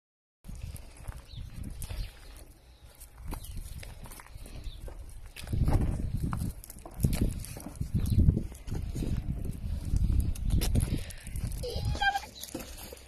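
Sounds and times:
footsteps on gravel: 0.5 - 13.0.

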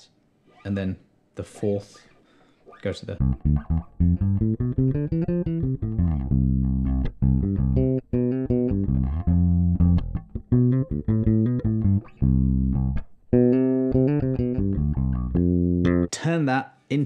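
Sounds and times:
man talking: 0.0 - 2.1, 2.8 - 3.3, 16.1 - 17.0
electric bass guitar fingerstyle: 2.0 - 16.1.

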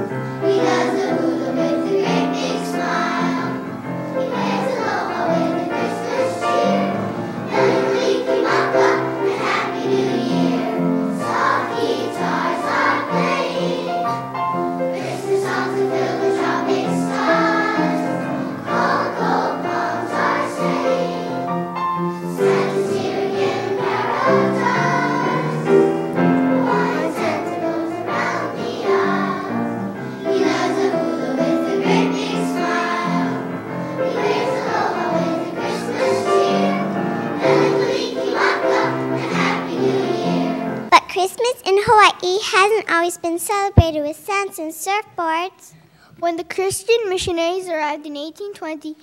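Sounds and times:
children's choir singing: 0.0 - 41.0.

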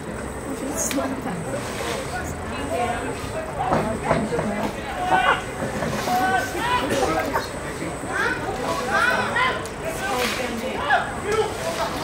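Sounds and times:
voices calling and shouting: 0.0 - 12.0.

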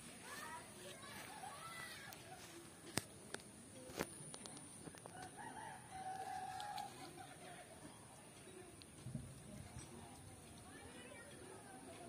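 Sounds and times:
rooster crowing: 5.4 - 6.9.

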